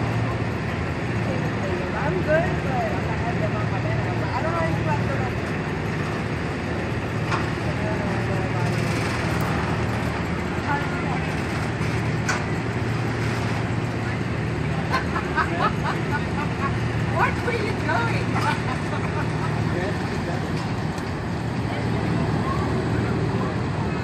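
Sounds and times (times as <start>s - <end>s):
voices of onlookers: 0.0s - 24.0s.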